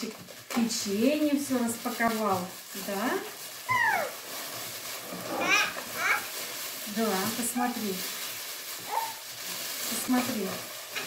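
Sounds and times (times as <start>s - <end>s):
plastic bag crinkling: 0.0s - 11.0s
toddler squealing: 3.7s - 4.2s, 5.3s - 6.3s, 8.9s - 9.2s.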